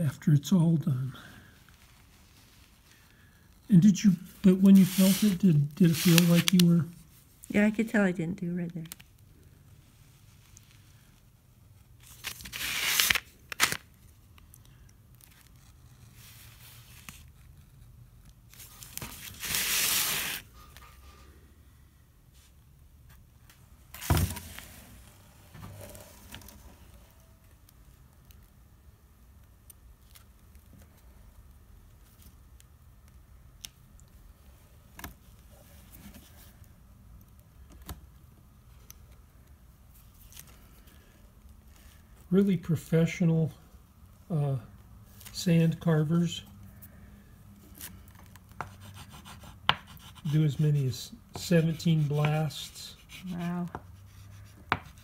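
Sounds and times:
craft knife cutting paper: 0:04.6 - 0:06.8.

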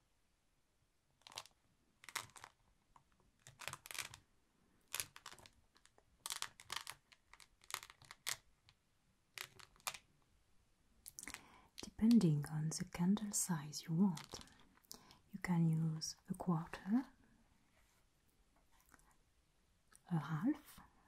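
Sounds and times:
beeswax sheet crinkling: 0:01.2 - 0:10.2, 0:11.0 - 0:15.2.

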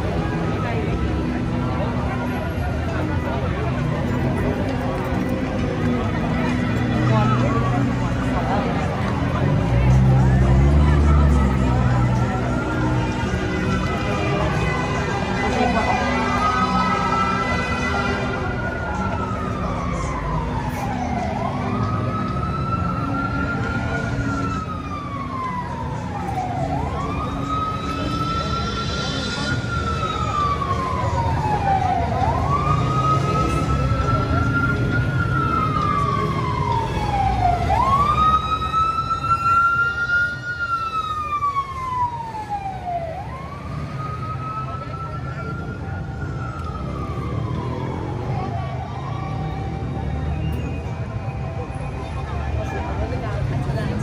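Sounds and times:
emergency vehicle siren wailing: 0:00.0 - 0:54.0
low street noise: 0:00.0 - 0:54.0.

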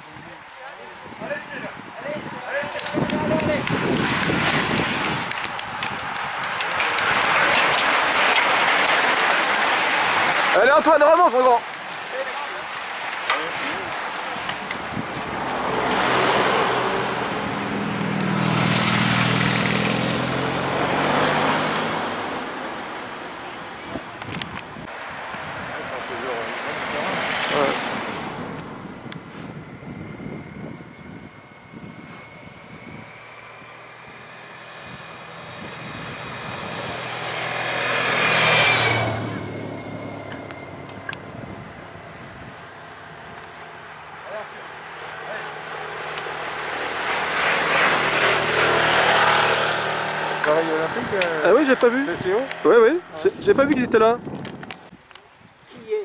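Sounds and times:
motorbikes and cars passing: 0:00.1 - 0:54.9.

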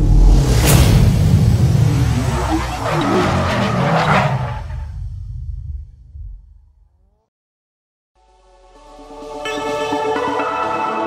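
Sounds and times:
whooshes: 0:00.0 - 0:06.3
heavy low rumble: 0:00.0 - 0:07.0.

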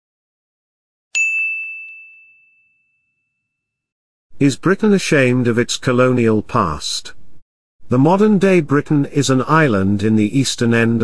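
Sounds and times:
bright bell-like ding: 0:01.2 - 0:03.6.

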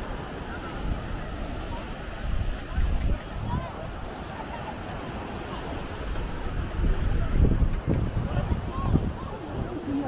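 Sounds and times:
surf breaking on beach: 0:00.0 - 0:10.0
wind buffeting microphone: 0:00.0 - 0:10.0.

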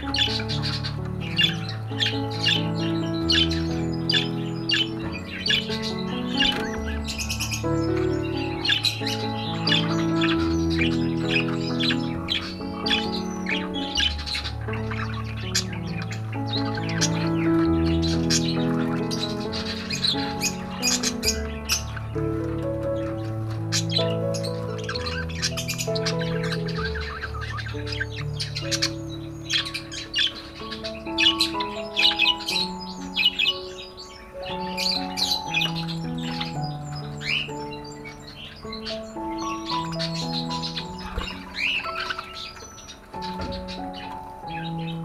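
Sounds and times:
budgerigars chirping and squawking: 0:00.0 - 0:45.0
slow background music: 0:00.0 - 0:45.0.

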